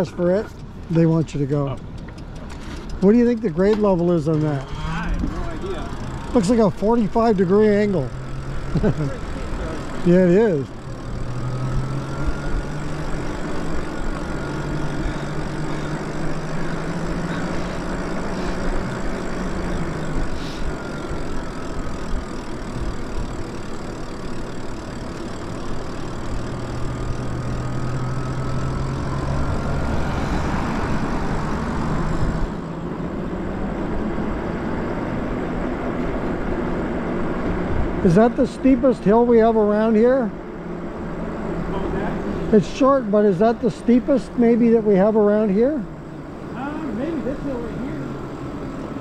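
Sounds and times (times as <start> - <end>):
electric motor whining: 4.2 - 32.6.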